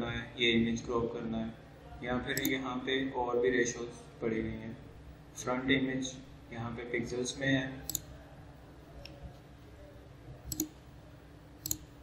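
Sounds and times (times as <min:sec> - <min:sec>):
computer mouse clicks: 0:02.4 - 0:02.6, 0:07.8 - 0:08.2, 0:10.4 - 0:10.8, 0:11.6 - 0:12.0.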